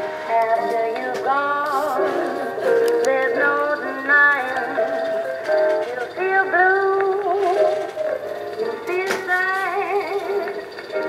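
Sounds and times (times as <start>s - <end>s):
song with high sung melody: 0.0s - 11.0s.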